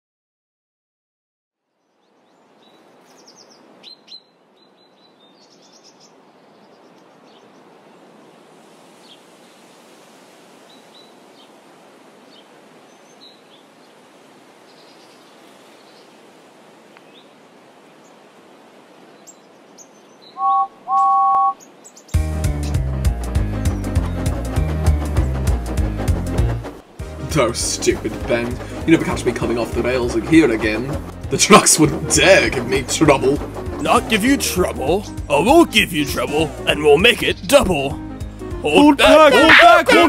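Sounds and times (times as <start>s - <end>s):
birds chirping: 1.8s - 9.2s, 12.2s - 14.0s, 18.9s - 40.0s
two-note engine whistle: 20.4s - 21.6s.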